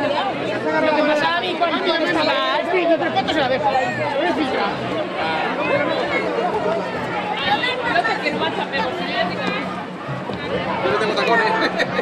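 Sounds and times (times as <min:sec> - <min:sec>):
crowd of children and adults chattering: 0:00.0 - 0:12.0.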